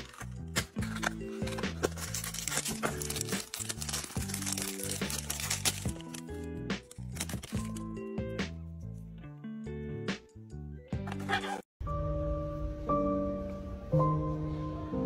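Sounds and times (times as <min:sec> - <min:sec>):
plastic wrapper crinkling and tearing: 0:00.0 - 0:07.9
background music: 0:00.0 - 0:15.0.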